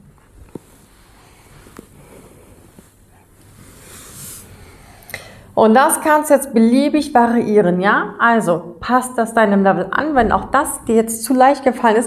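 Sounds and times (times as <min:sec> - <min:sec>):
body rustling on exercise mat: 0:00.0 - 0:05.0.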